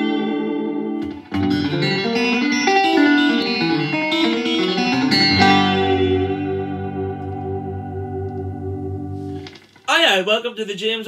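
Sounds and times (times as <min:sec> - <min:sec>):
electric guitar chord ringing: 0:00.0 - 0:09.7.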